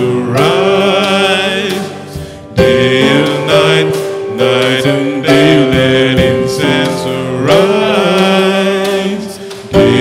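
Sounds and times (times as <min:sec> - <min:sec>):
live worship band music: 0:00.0 - 0:10.0.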